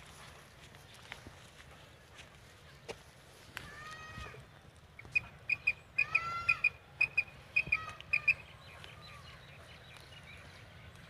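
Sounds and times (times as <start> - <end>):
pitch-bending calls: 5.0 - 8.6.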